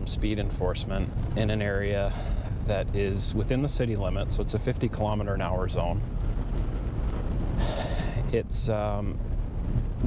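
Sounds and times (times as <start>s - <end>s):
road and engine rumble in car: 0.0s - 10.0s.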